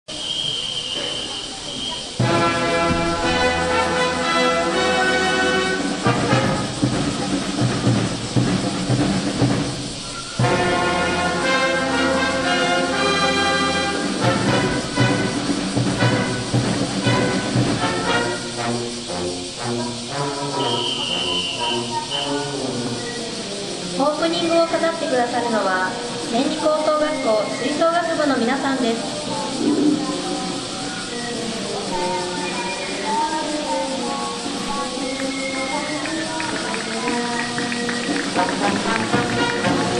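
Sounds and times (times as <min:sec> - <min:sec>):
marching brass band playing: 0:00.9 - 0:25.0, 0:34.8 - 0:39.9.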